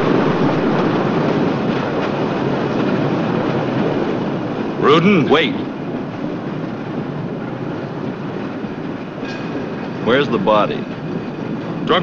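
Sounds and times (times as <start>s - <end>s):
cable car running on rails: 0.0s - 12.0s.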